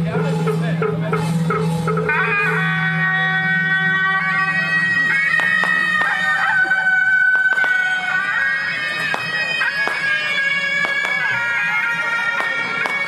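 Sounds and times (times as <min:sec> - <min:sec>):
sharp percussion strikes: 0:00.0 - 0:13.0
shawm procession music: 0:00.0 - 0:13.0.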